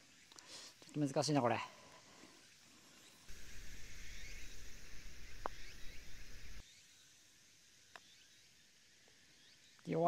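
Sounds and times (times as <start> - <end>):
birds chirping: 3.0 - 6.6.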